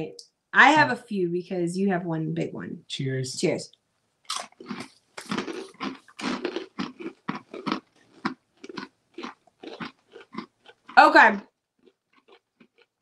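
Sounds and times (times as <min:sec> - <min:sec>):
people chewing crunchy pretzels: 0:04.3 - 0:13.0.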